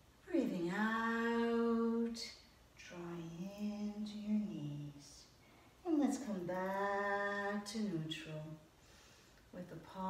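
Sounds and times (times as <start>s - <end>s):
woman breathing: 5.4s - 5.8s, 8.7s - 9.5s.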